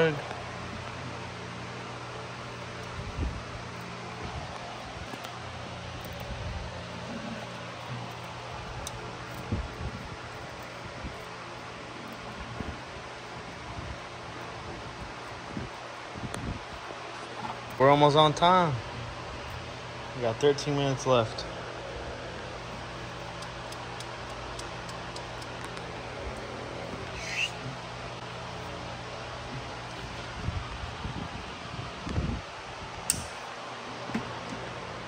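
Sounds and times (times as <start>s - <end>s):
steady background hum: 0.0s - 35.0s.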